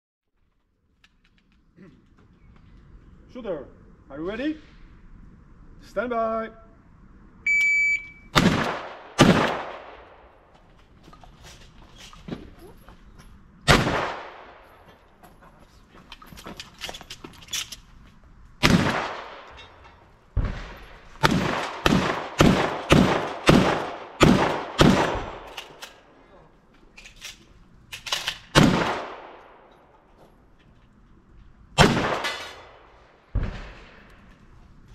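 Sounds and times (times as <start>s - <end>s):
gunshots with echo: 8.4s - 10.2s, 20.4s - 25.5s, 31.8s - 34.0s.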